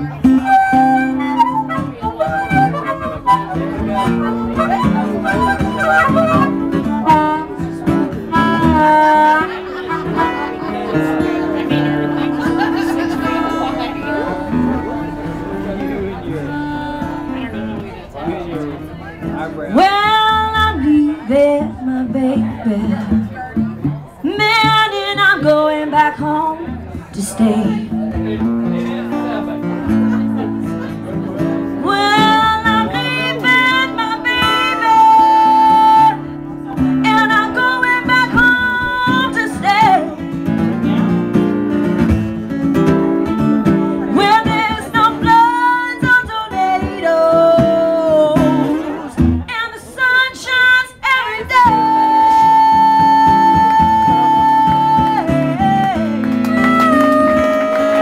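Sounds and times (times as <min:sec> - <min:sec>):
acoustic guitar chords: 0:00.0 - 0:58.0
wailing melodic lead: 0:08.4 - 0:19.2.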